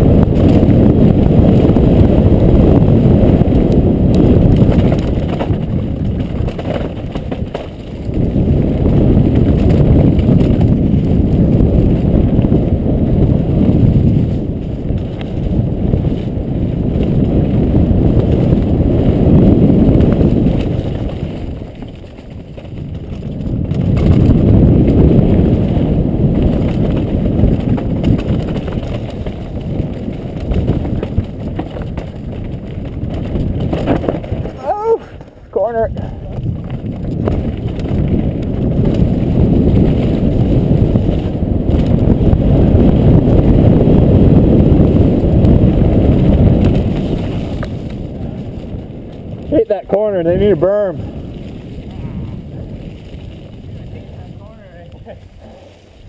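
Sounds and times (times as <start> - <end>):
bike tyres rumbling over dirt: 0.0 - 56.0
wind rushing over microphone: 0.0 - 56.0.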